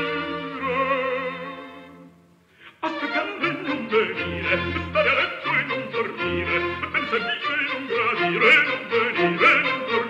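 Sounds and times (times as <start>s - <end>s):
person singing with vibrato: 0.0s - 10.0s
string orchestra: 0.0s - 10.0s.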